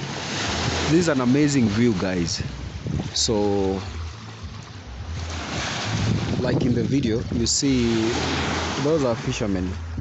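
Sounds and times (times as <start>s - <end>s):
small waves lapping on shore: 0.0s - 10.0s
wind on microphone: 1.7s - 8.8s.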